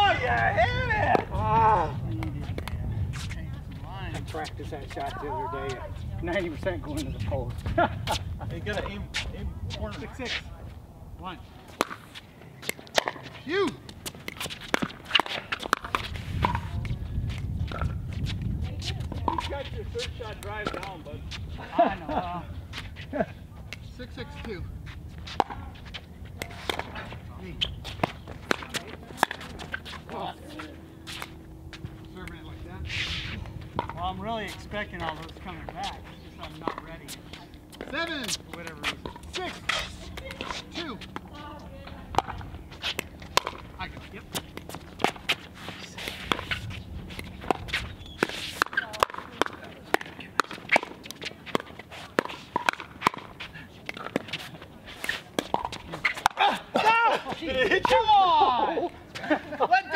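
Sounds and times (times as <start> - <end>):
shoes on court: 0.1 - 10.7, 11.5 - 59.9.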